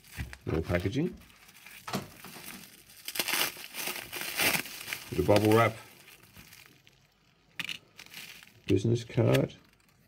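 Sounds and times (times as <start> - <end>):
bubble wrap crinkling: 0.0 - 10.0.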